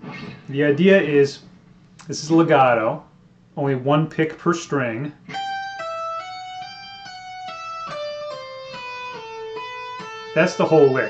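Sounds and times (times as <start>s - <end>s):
electric guitar legato lick: 5.3s - 11.0s.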